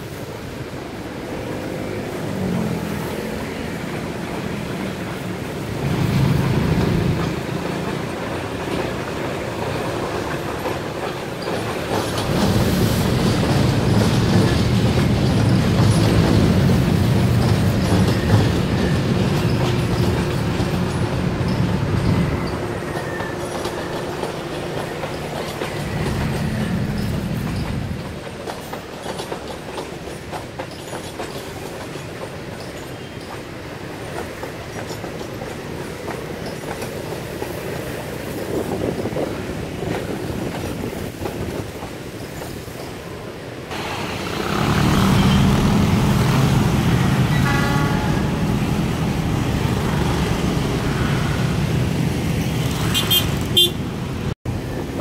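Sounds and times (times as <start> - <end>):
diesel locomotive engines rumbling: 0.0 - 55.0
train wheels clicking over rail joints: 0.3 - 53.6.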